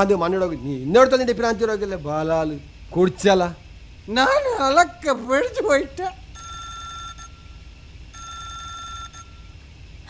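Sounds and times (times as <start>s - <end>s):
phone ringtone: 6.4s - 9.6s.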